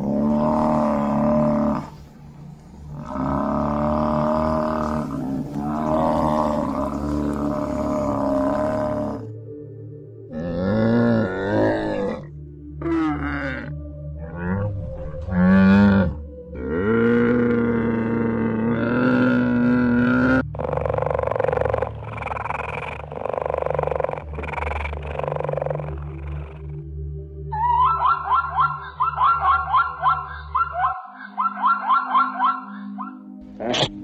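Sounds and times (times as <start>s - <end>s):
camel deep groaning calls: 0.0s - 2.0s, 2.9s - 9.3s, 10.3s - 26.8s
cheetah rasping breathy calls: 19.0s - 26.8s, 27.5s - 34.0s
zebra high yelping barks: 27.6s - 33.9s.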